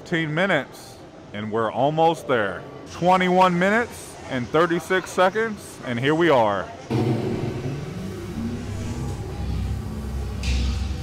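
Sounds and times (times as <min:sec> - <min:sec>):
steady low rumble: 0:06.9 - 0:11.0.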